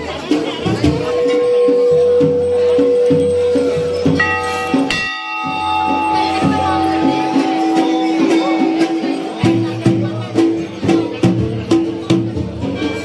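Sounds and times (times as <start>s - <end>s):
music with steady beat: 0.0s - 13.0s
brass temple bells ringing: 0.6s - 13.0s.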